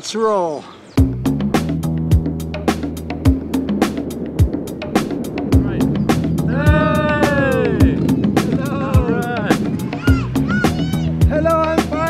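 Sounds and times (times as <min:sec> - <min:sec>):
upbeat music with kick drum: 0:01.0 - 0:12.0
long falling vocal call: 0:05.8 - 0:11.2.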